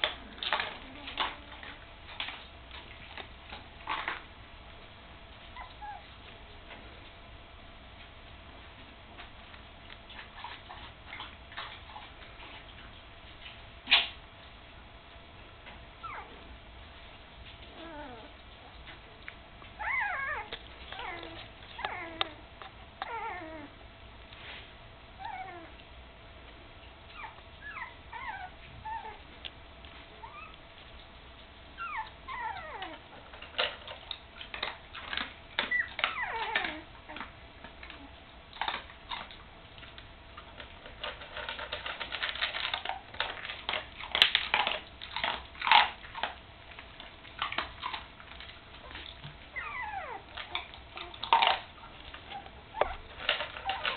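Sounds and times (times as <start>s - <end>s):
rustling: 0.0s - 7.3s
puppies whimpering: 5.5s - 6.1s, 16.0s - 16.4s, 17.7s - 18.8s, 19.8s - 23.8s, 25.2s - 25.8s, 27.1s - 29.3s, 30.1s - 30.6s, 31.8s - 33.3s, 35.6s - 37.3s, 48.8s - 53.9s.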